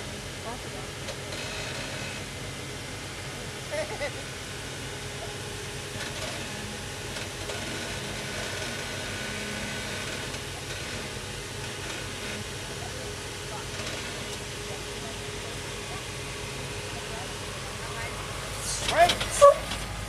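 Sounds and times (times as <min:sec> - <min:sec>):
car engine at low revs: 0:00.0 - 0:20.0.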